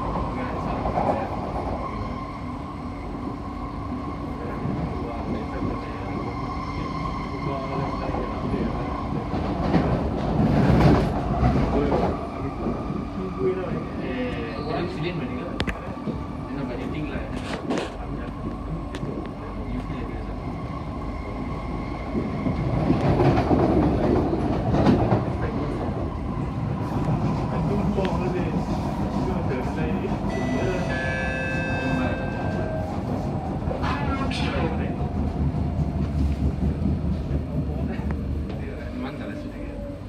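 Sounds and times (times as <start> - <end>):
train wheels rumbling on rails: 0.0 - 40.0
brief high tones: 30.3 - 32.8.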